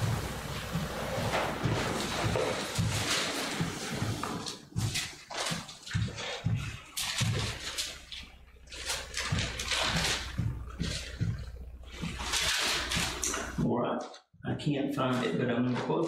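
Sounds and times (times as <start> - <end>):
low steady hum: 0.0 - 15.8.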